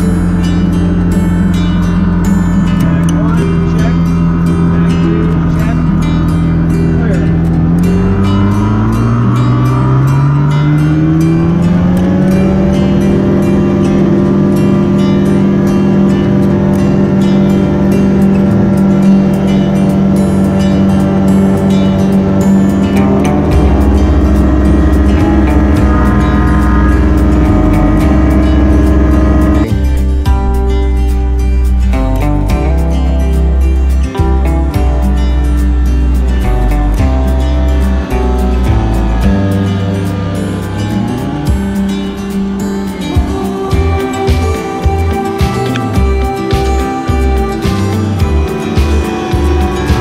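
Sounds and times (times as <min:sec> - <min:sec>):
light aircraft engine and propeller: 0:00.0 - 0:50.0.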